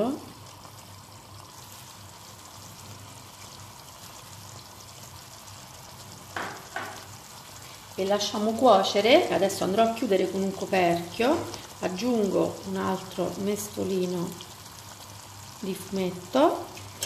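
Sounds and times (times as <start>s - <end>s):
soup simmering in a pot: 0.0s - 17.0s.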